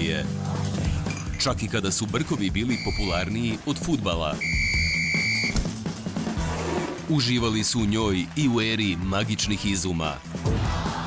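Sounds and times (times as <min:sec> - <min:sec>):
background music with soft beats: 0:00.0 - 0:11.0
referee's whistle: 0:02.7 - 0:03.4, 0:04.4 - 0:05.6.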